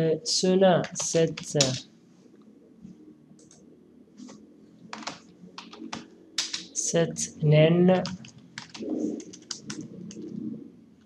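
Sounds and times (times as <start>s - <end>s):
computer keyboard keystrokes: 0.8s - 1.8s, 3.4s - 3.6s, 4.9s - 6.7s, 8.0s - 10.3s.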